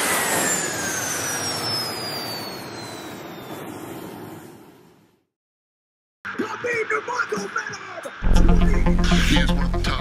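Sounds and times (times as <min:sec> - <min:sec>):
thin whistling tone sliding downward: 0:00.1 - 0:04.5.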